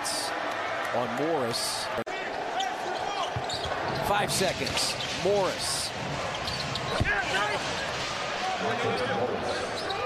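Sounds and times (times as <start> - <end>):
crowd noise: 0.0 - 10.0
sneakers squeaking on court: 3.0 - 4.0, 6.4 - 7.1, 9.6 - 10.0.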